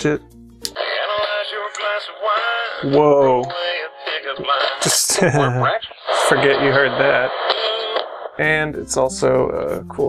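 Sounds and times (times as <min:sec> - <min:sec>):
song playing through small radio speaker: 0:00.0 - 0:10.0.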